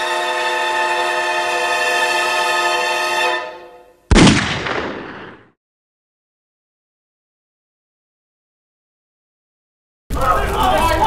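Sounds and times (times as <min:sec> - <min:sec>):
gunshot: 0:04.1 - 0:05.6.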